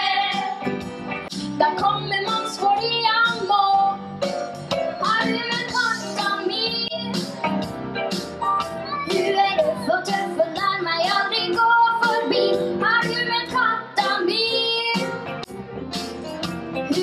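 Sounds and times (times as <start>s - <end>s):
girls singing into microphones: 0.0s - 0.6s
live band accompaniment: 0.0s - 17.0s.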